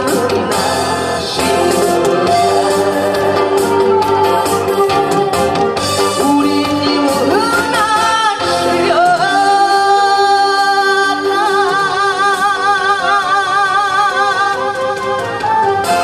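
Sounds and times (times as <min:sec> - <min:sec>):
instrumental accompaniment: 0:00.0 - 0:16.0
woman singing into microphone: 0:00.0 - 0:16.0.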